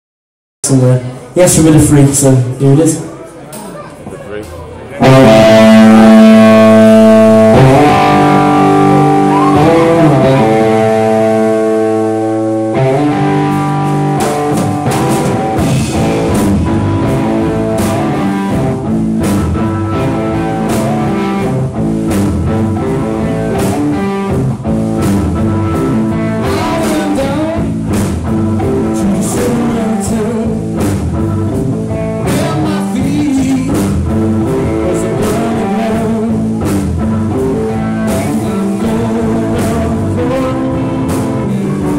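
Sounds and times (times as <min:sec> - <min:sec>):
electric guitars and bass chords: 0:04.7 - 0:41.9
drums playing rock beat: 0:05.0 - 0:41.9.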